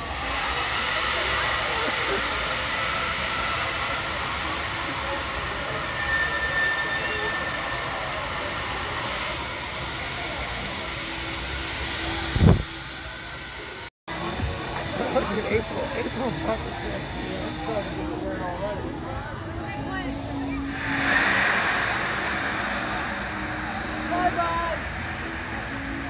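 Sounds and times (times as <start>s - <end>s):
amusement park crowd: 0.0s - 26.0s.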